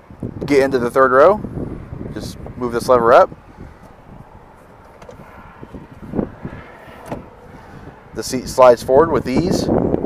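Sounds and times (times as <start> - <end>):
seat sliding on track: 4.7 - 7.4
car seat lever click: 4.8 - 5.2, 7.0 - 7.3.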